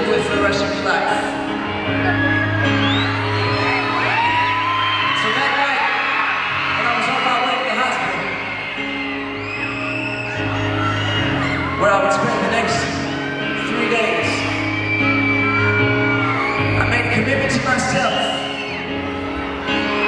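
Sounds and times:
crowd screaming and whooping: 0.0s - 20.0s.

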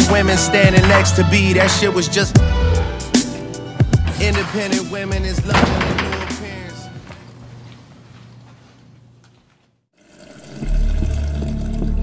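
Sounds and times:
music with deep bass beat: 0.0s - 6.8s
water pouring into plastic bottle: 10.0s - 12.0s.

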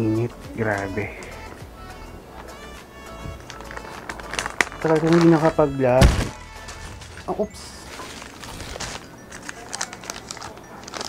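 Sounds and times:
background music: 0.0s - 11.0s
plastic bag crinkling: 2.4s - 11.0s.

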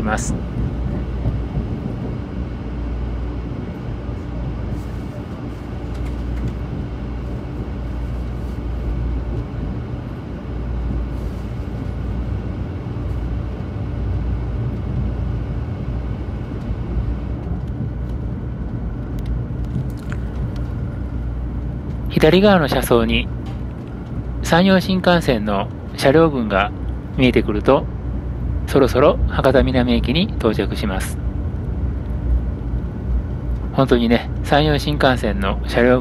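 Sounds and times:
train rumble inside carriage: 0.0s - 36.0s.

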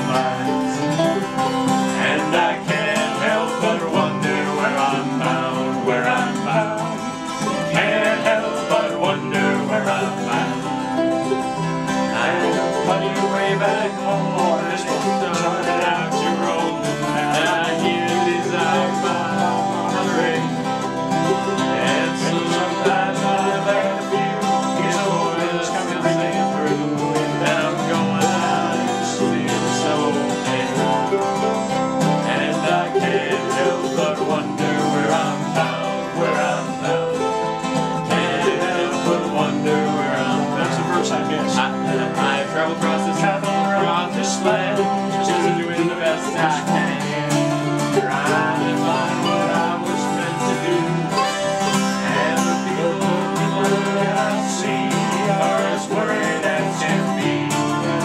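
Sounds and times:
acoustic guitar strumming: 0.0s - 58.0s
mandolin picking: 0.0s - 58.0s
person singing folk song: 0.0s - 58.0s.

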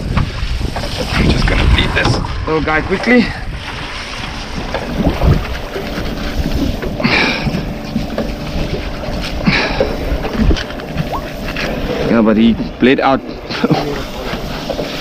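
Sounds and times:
water washing along hull: 0.0s - 15.0s
wind on microphone: 0.0s - 15.0s.

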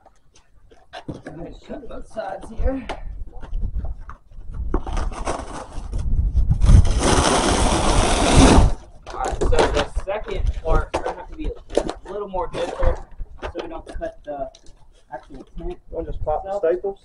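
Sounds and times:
cardboard crackling: 0.0s - 15.1s
cardboard ripping: 4.8s - 9.9s.

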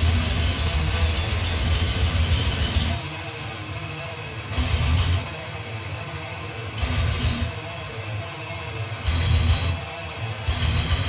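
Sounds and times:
fast kick drums: 0.0s - 3.0s
distorted guitars: 0.0s - 11.0s.

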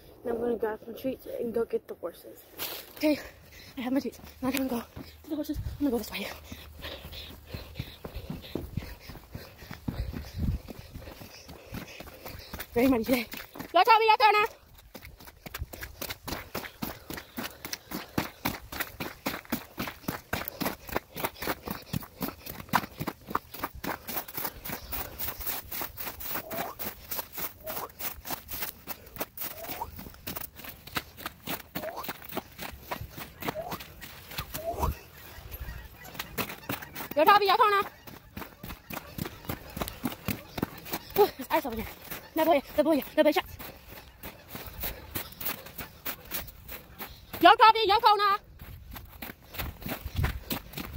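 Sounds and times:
footsteps crunching on mud and snow: 2.4s - 50.9s.

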